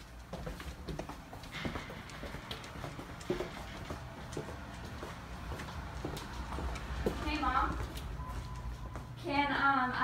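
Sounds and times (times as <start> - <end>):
footsteps on hardwood floor: 0.0 - 9.2.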